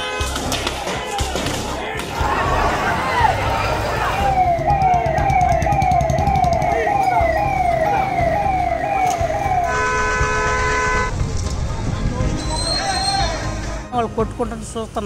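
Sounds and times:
siren wailing up and down: 3.1 - 11.1
steady horn-like siren tone: 3.2 - 11.1.

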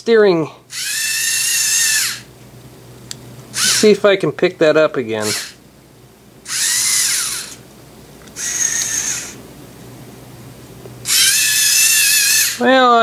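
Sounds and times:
robot servo motors whining: 0.7 - 2.3, 3.6 - 3.9, 5.2 - 5.6, 6.5 - 7.6, 8.3 - 9.4, 11.0 - 12.6.

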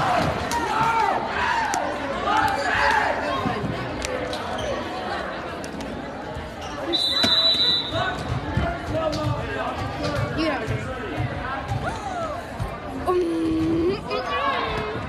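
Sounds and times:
crowd chatter: 0.0 - 15.0
players' voices: 0.0 - 15.0
referee's whistle blast: 6.9 - 8.0.

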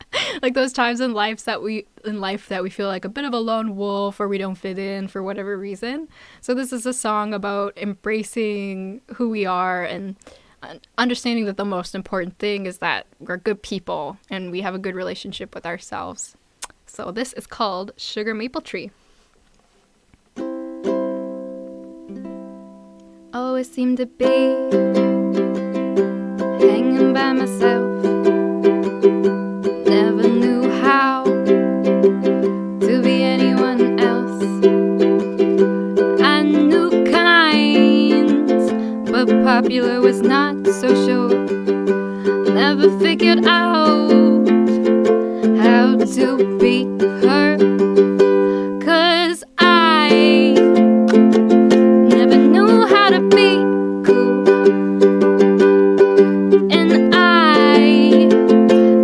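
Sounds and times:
woman singing: 0.0 - 11.7, 23.4 - 25.1, 26.4 - 28.1, 29.8 - 35.5, 36.1 - 51.3, 52.0 - 54.8, 56.6 - 59.0
ukulele strummed chords: 20.4 - 59.0.

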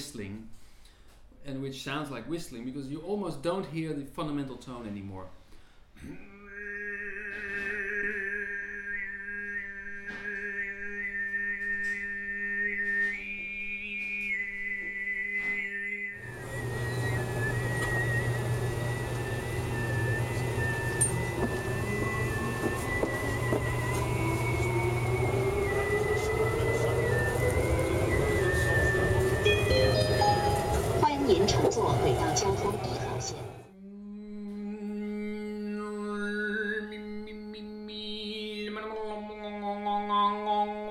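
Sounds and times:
man overtone singing: 6.0 - 11.6, 18.1 - 33.6
rising whine: 15.9 - 33.7
metro train moving: 16.2 - 33.7.

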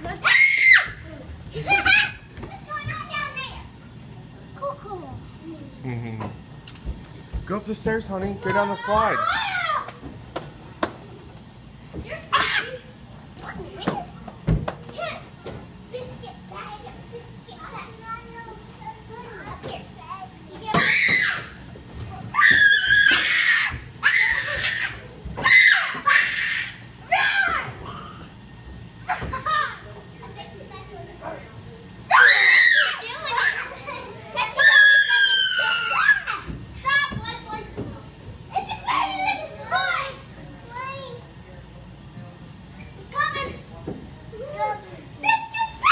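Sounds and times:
young children calling and chattering: 0.0 - 45.9
child squealing: 34.4 - 36.4.

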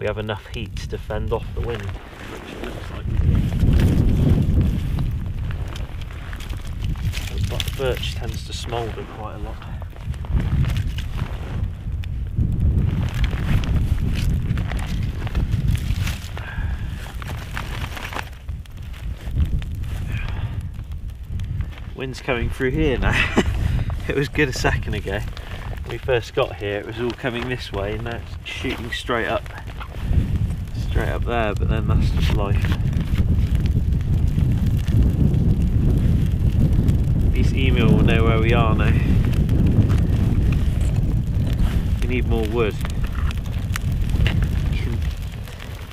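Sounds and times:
twig fire crackling: 0.0 - 45.9
wind buffeting microphone: 0.0 - 45.9.

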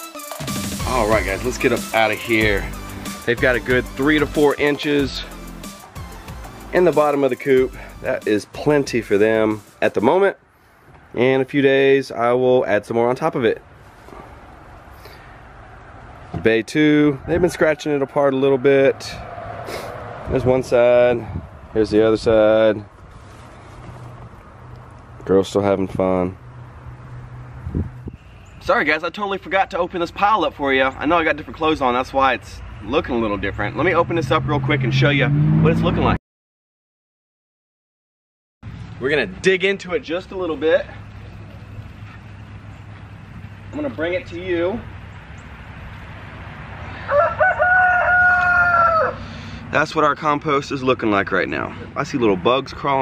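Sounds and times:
outdoor background noise: 8.2 - 35.9, 38.6 - 53.0
rooster crowing: 46.9 - 49.5.

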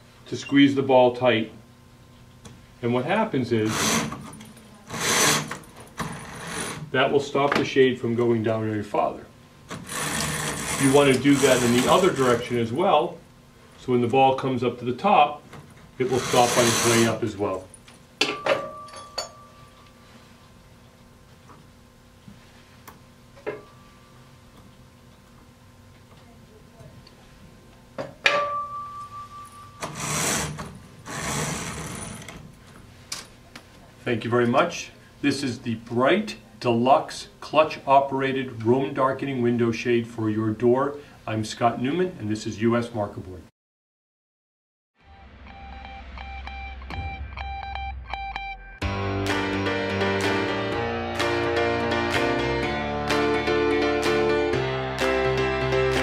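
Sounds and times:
sharp knock with ringing tone: 28.2 - 29.7.

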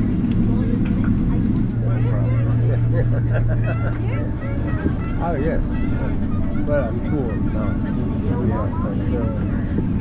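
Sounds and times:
jet engines idling: 0.0 - 10.0
people talking: 0.3 - 10.0.

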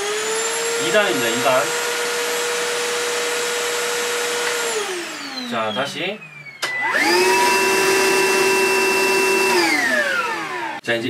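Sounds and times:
vacuum motor whining: 0.0 - 10.8.

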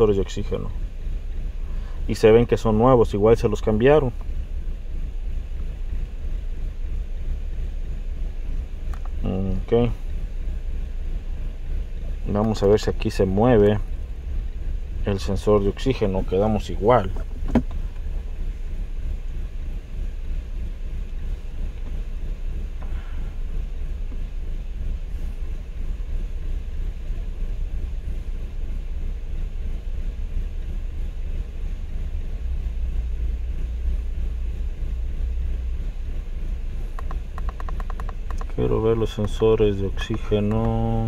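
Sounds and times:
car engine idling roughly: 0.0 - 41.0.

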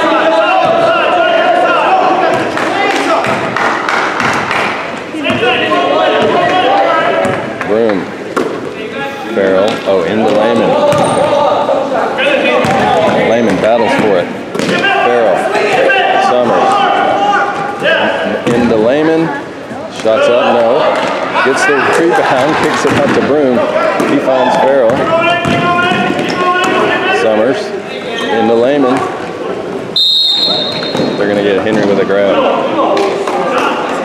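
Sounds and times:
spectators' voices echoing: 0.0 - 34.0
sneakers squeaking: 10.9 - 11.4, 30.0 - 31.8.

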